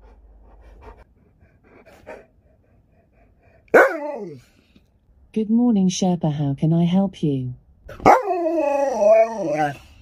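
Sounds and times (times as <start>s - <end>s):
dog howling: 3.7s - 4.4s, 8.0s - 9.9s.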